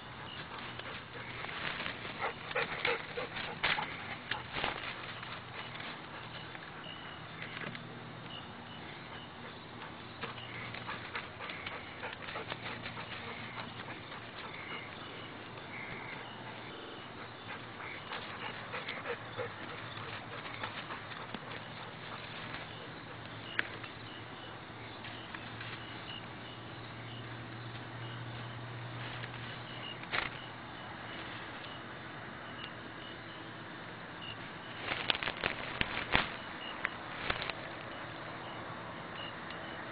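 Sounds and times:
rustling in dry grass: 0:00.0 - 0:07.8, 0:08.9 - 0:16.7, 0:27.8 - 0:30.5, 0:34.6 - 0:37.9
dog barking and yipping: 0:02.0 - 0:04.4.

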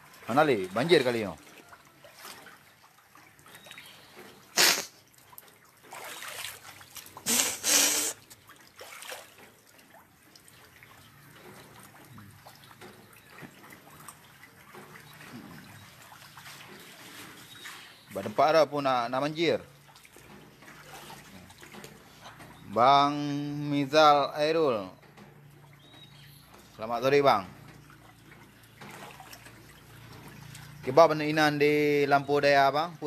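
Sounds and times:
water splashing: 0:00.0 - 0:33.0.

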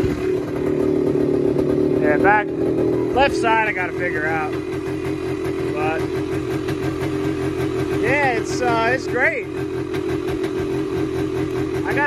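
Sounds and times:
two-stroke engine idling high: 0:00.0 - 0:12.0.

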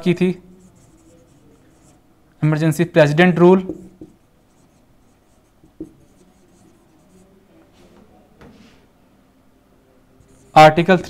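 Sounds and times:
marker scratching on whiteboard: 0:00.0 - 0:02.0, 0:03.6 - 0:07.3, 0:10.2 - 0:11.0.

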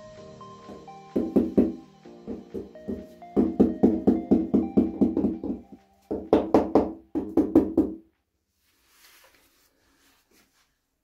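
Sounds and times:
rubber mallet tapping tiles: 0:02.4 - 0:07.7.

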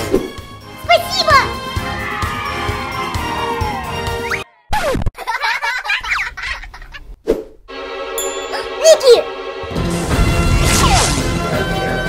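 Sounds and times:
background music: 0:00.0 - 0:04.5, 0:07.7 - 0:12.0.

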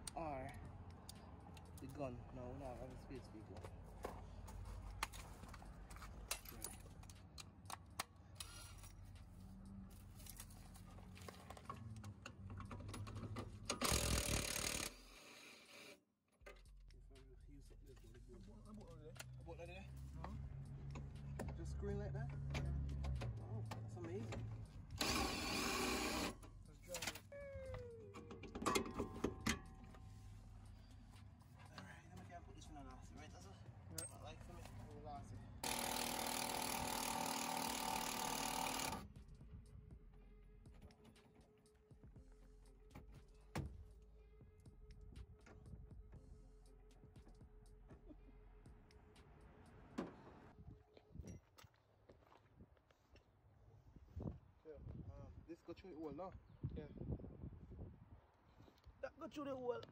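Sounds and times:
impact wrench bursts: 0:13.7 - 0:16.0, 0:25.0 - 0:26.5, 0:35.6 - 0:39.0.

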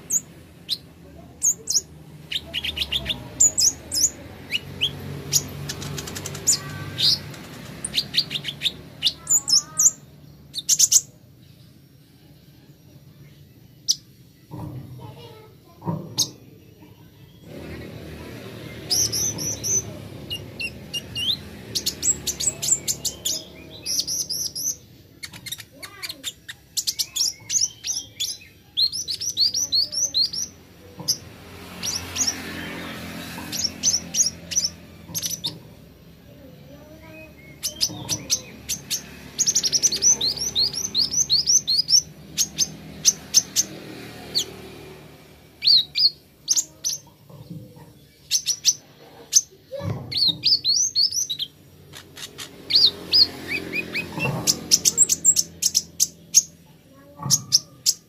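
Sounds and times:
sunbird singing high chirps: 0:00.0 - 0:14.5, 0:16.1 - 0:47.3, 0:47.9 - 0:58.0.

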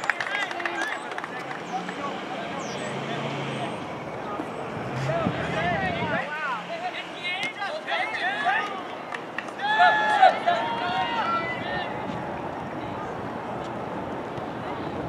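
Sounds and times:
players shouting and calling: 0:00.0 - 0:15.0.

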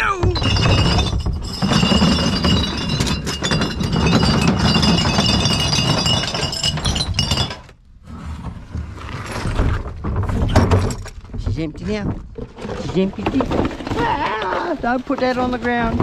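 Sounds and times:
bottles and cans clattering: 0:00.0 - 0:07.8, 0:09.4 - 0:16.0.

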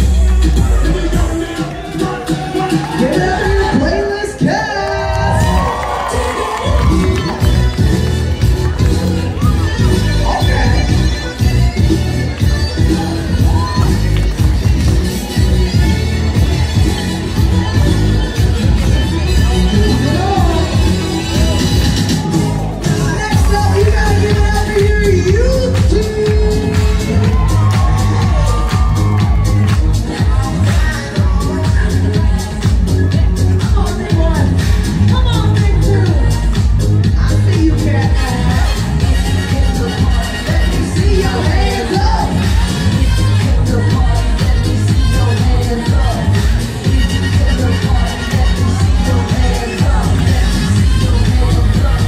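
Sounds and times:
crowd cheering and shouting: 0:00.0 - 0:52.0
melodic vocals: 0:00.0 - 0:52.0
pop dance music: 0:00.0 - 0:52.0.

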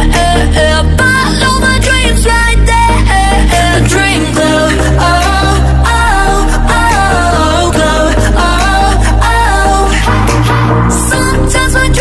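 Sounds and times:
pop song with deep bass: 0:00.0 - 0:12.0.

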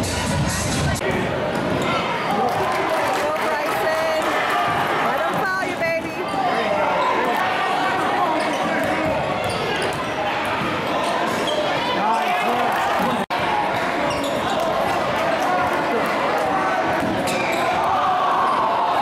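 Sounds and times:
chatter and calls in a gym: 0:00.0 - 0:19.0.

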